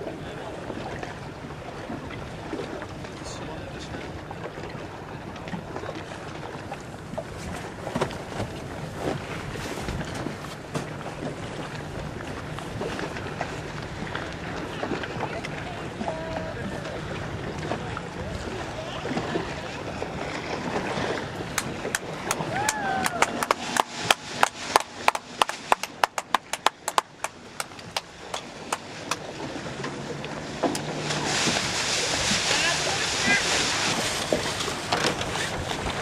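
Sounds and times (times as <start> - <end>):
water noise: 0.0 - 36.0
wind: 0.0 - 36.0
low steady hum: 19.6 - 31.7.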